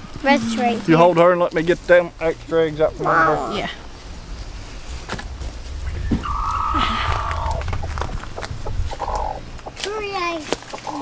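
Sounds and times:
hand rustling in straw: 0:03.6 - 0:06.6
wind rumble on microphone: 0:03.6 - 0:09.8.

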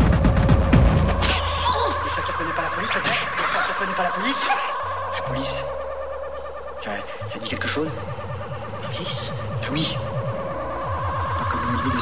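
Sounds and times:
held synth tones: 0:00.8 - 0:12.0.

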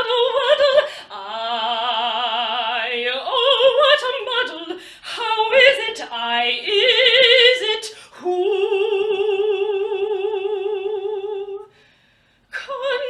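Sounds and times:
woman singing operatic phrase: 0:00.0 - 0:11.7, 0:12.6 - 0:13.0.

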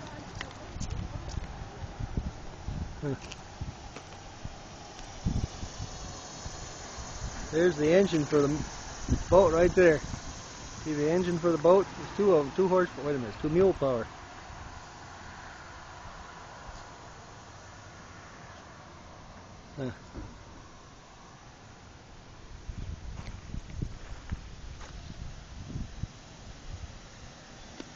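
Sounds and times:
footsteps on gravel: 0:00.0 - 0:05.8, 0:23.1 - 0:25.0
low microphone rumble: 0:00.0 - 0:12.2
footstep thumps and scuffs: 0:23.1 - 0:25.1.

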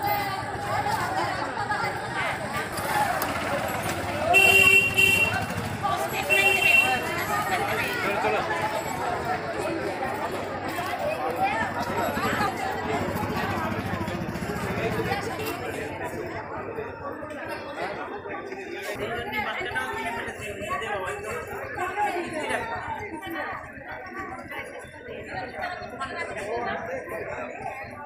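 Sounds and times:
indistinct chatter of people: 0:00.0 - 0:28.0
people talking: 0:00.0 - 0:28.0
vehicle horn honk: 0:04.3 - 0:05.6, 0:06.2 - 0:07.1.

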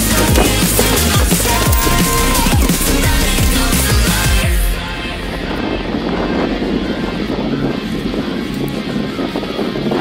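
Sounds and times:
small car engine rumbling: 0:00.0 - 0:04.4.

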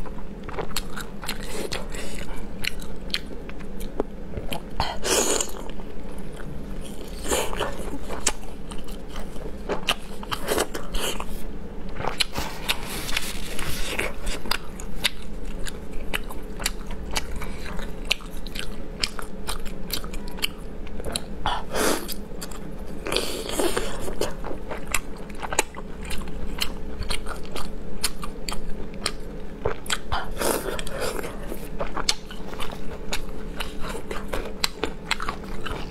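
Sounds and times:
person chewing food: 0:00.0 - 0:35.9.

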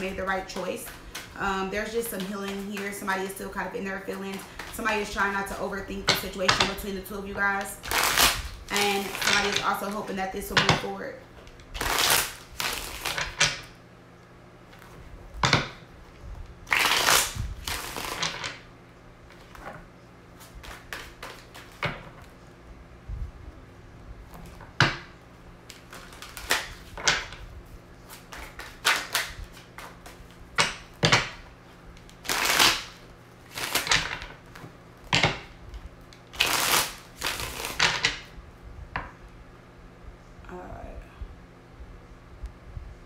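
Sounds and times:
cards being shuffled: 0:00.0 - 0:03.4, 0:07.7 - 0:10.0, 0:11.4 - 0:13.7, 0:16.7 - 0:18.6, 0:20.4 - 0:22.4, 0:25.6 - 0:27.4, 0:28.0 - 0:35.4, 0:36.1 - 0:38.3.

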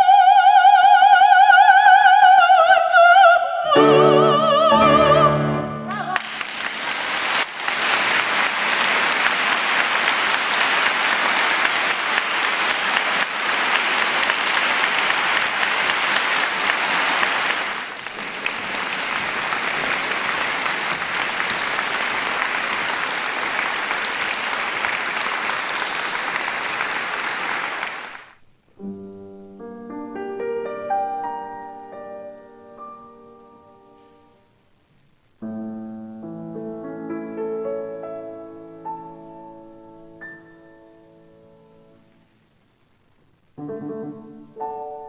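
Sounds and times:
audience applauding: 0:05.9 - 0:28.4.

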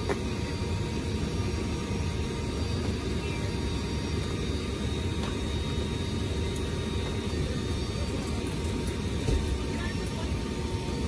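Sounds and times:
faint steady tones: 0:00.0 - 0:11.0
turboprop engines droning: 0:00.0 - 0:11.0.

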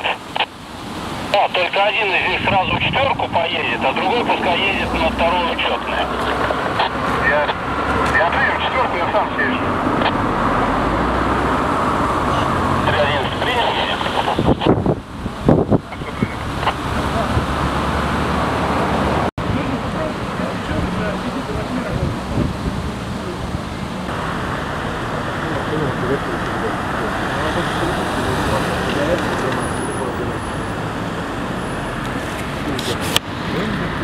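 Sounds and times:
traffic noise: 0:00.0 - 0:34.0
indistinct voices: 0:01.3 - 0:10.8, 0:12.2 - 0:14.8, 0:19.4 - 0:31.1.

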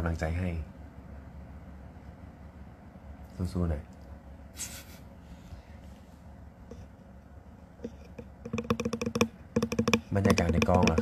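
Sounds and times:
rapid touchscreen typing taps: 0:07.8 - 0:11.0.

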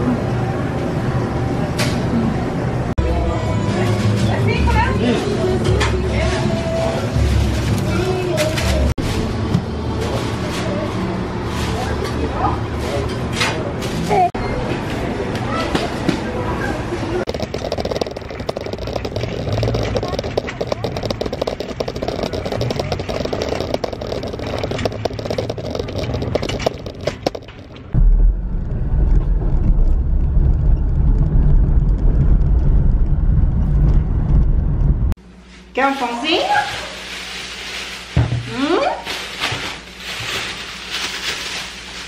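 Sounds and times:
shopping trolley rolling and rattling: 0:03.6 - 0:14.3, 0:17.2 - 0:28.0
car driving interior rumble: 0:17.5 - 0:35.2.

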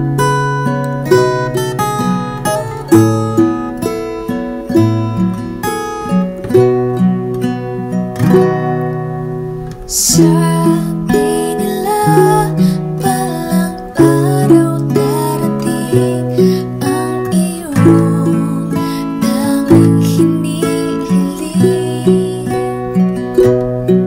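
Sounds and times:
ukulele and acoustic guitar: 0:00.0 - 0:24.0
woman singing: 0:09.9 - 0:23.2.

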